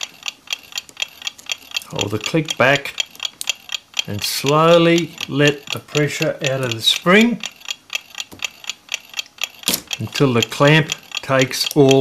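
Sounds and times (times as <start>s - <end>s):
metallic ratchet clicks: 0.0s - 12.0s.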